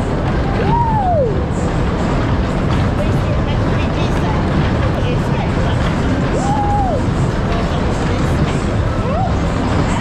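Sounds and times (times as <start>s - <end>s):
fairground ride rumbling: 0.0s - 10.0s.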